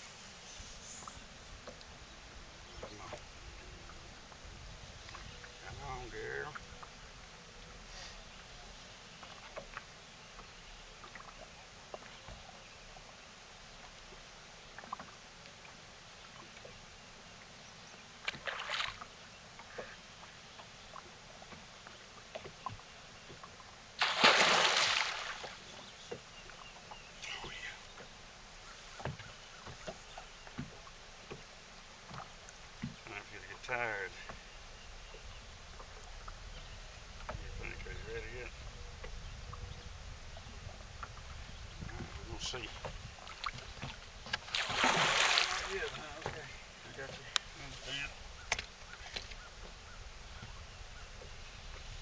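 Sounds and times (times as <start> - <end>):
sharp slap on water: 24.0 - 25.5
fish splashing at water surface: 24.0 - 25.7, 44.4 - 46.4.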